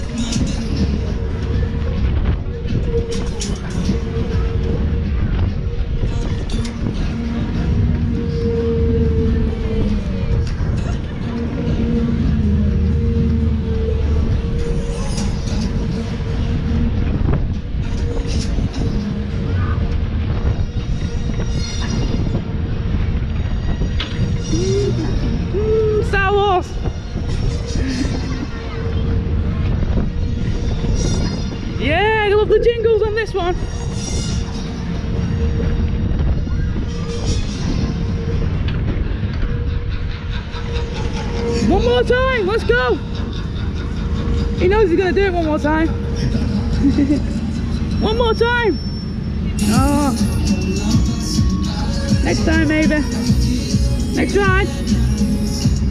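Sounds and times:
wind on microphone: 0:00.0 - 0:48.6
funfair ride music jingles: 0:00.0 - 0:55.9
low rumble of moving ride: 0:00.0 - 0:55.9.

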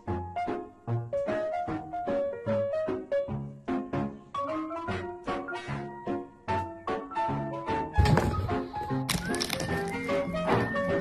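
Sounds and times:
loud thunk: 0:08.0 - 0:08.7.

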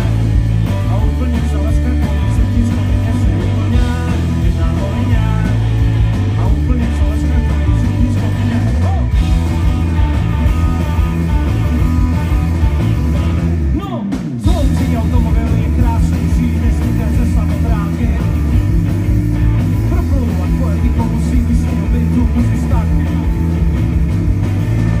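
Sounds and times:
person singing lead vocal: 0:00.0 - 0:09.4, 0:13.7 - 0:18.7, 0:19.8 - 0:23.4
bass guitar: 0:00.0 - 0:25.0
drum kit: 0:00.0 - 0:25.0
electric guitars: 0:00.0 - 0:25.0.

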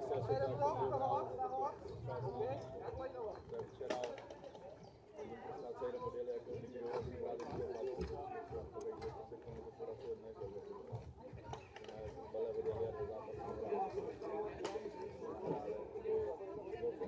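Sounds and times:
distant people talking: 0:00.0 - 0:17.0.

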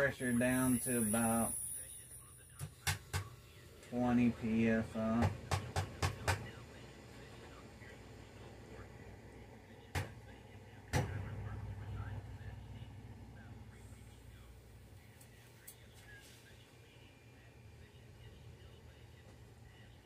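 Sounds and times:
low hum: 0:05.9 - 0:20.0.

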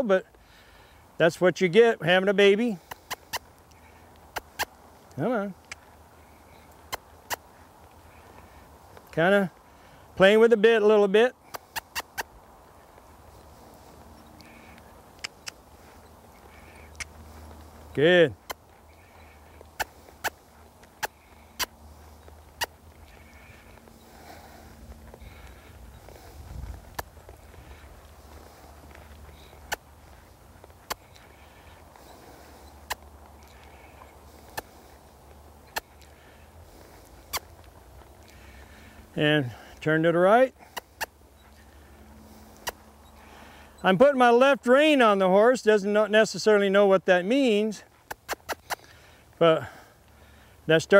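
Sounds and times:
hoof steps on sand: 0:01.2 - 0:45.0
sharp tongue clicks: 0:02.8 - 0:05.9, 0:06.7 - 0:07.6, 0:11.5 - 0:12.4, 0:14.3 - 0:17.7, 0:18.4 - 0:24.4, 0:25.3 - 0:33.8, 0:35.6 - 0:36.2, 0:37.1 - 0:38.6, 0:42.5 - 0:42.8, 0:48.0 - 0:49.0
sharp clicks: 0:05.6 - 0:05.9, 0:14.3 - 0:15.7, 0:16.6 - 0:17.2, 0:26.9 - 0:27.4.

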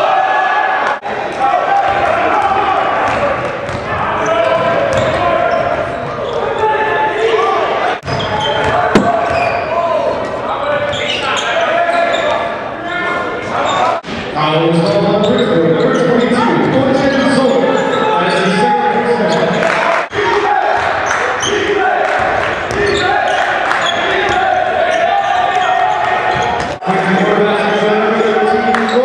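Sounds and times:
echoing voices in a hall: 0:00.0 - 0:29.0.

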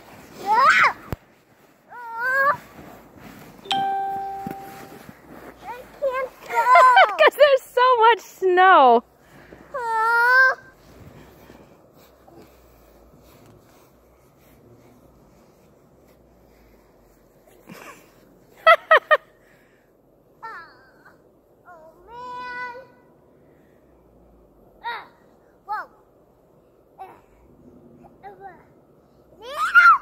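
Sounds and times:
toddler calling and yelping: 0:29.4 - 0:30.0.

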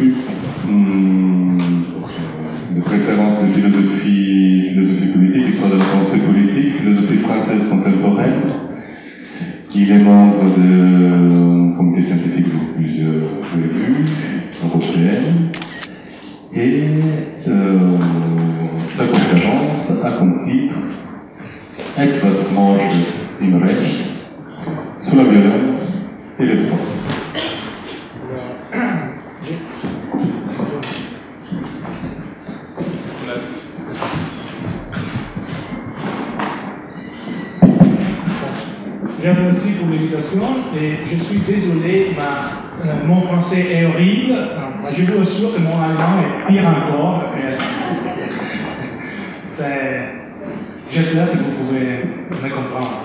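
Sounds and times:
man speaking into a microphone: 0:00.0 - 0:27.3, 0:37.6 - 0:53.0
camera shutter clicks: 0:15.6 - 0:16.0
microphone handling thumps: 0:31.4 - 0:36.7, 0:37.6 - 0:39.3.

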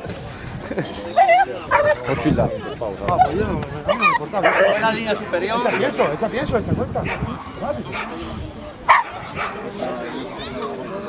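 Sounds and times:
dog barking: 0:08.9 - 0:09.6.

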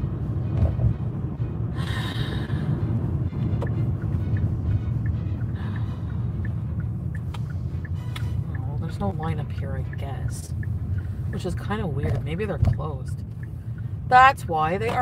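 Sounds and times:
music playing: 0:00.0 - 0:11.9
engine and road rumble: 0:00.0 - 0:15.0.

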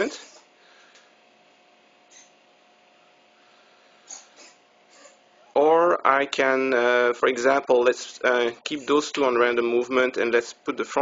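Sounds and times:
faint steady hum: 0:00.0 - 0:11.0.

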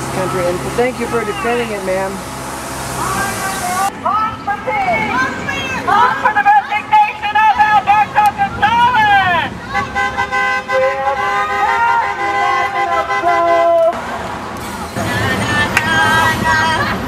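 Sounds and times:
voices shouting: 0:03.0 - 0:14.0
vehicle horn blast: 0:09.8 - 0:13.9.

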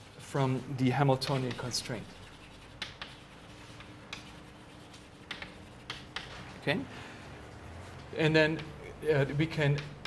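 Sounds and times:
chalk scratching on blackboard: 0:00.0 - 0:08.7
sharp chalk strokes: 0:00.0 - 0:08.8.

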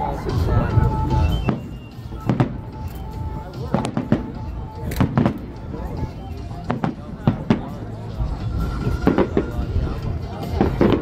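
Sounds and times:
fireworks bursting: 0:00.3 - 0:11.0.

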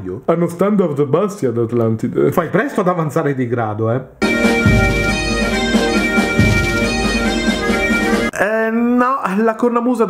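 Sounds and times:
bagpipes playing: 0:04.2 - 0:08.3.

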